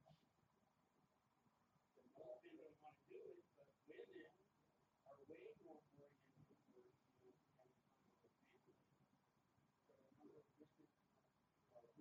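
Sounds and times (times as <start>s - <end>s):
faint human speech: 1.9s - 8.9s, 9.8s - 12.0s.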